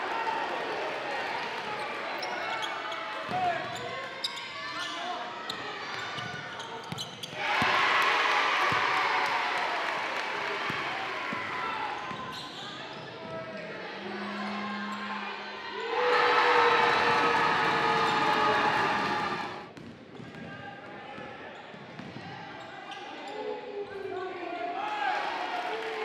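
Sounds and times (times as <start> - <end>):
voices in a hall: 0.0 - 26.0.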